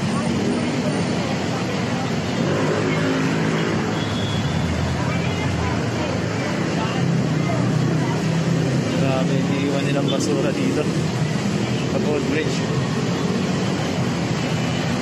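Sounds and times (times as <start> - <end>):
busy road traffic: 0.0 - 15.0.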